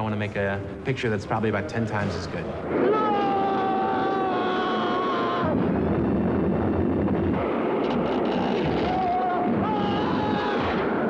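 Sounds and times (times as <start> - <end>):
rushing wind-like noise: 2.3 - 11.0
man screaming: 2.7 - 5.8, 8.8 - 11.0.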